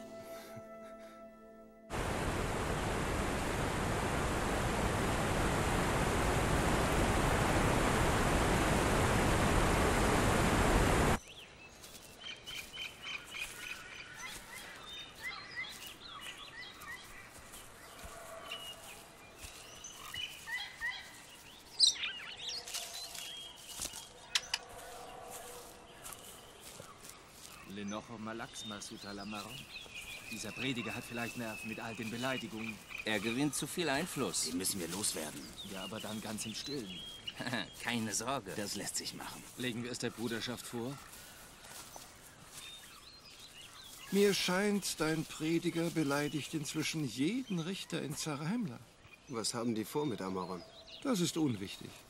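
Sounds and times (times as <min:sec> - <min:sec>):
bird chirps and calls: 0:11.2 - 0:52.0
sharp click: 0:24.3 - 0:24.6.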